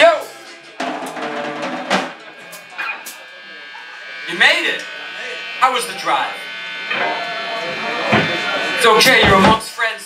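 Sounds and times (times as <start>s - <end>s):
amplifier electric buzz: 0.0s - 9.9s.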